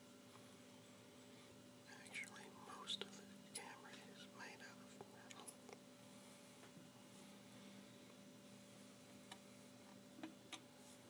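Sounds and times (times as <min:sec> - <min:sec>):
person whispering softly: 0:01.9 - 0:05.8.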